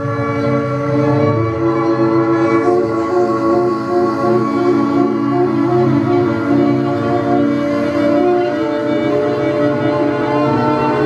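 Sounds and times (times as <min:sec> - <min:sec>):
clarinet long notes: 0:00.0 - 0:11.0
electronic drone: 0:00.0 - 0:11.0
violin long notes: 0:00.0 - 0:11.0.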